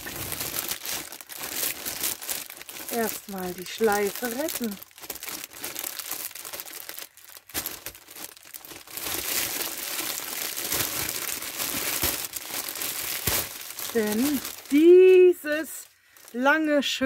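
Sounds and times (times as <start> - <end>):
cellophane wrap crackling: 0.0 - 17.0.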